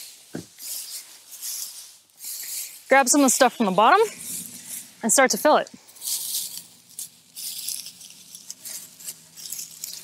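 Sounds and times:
hay rustling: 0.0 - 10.0.

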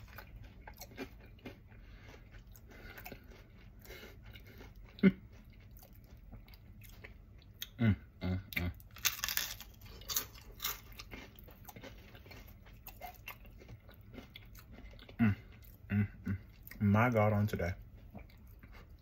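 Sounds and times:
person chewing crispy food: 0.0 - 19.0.

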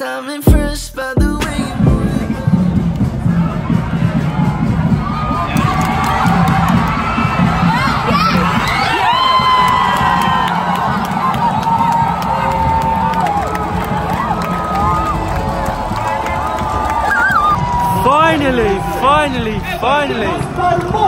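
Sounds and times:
crowd cheering and yelling: 2.0 - 21.0.

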